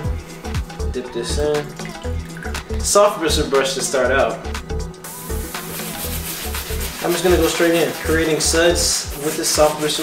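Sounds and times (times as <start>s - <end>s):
background music with steady beat: 0.0s - 10.0s
brush scrubbing leather: 5.2s - 10.0s.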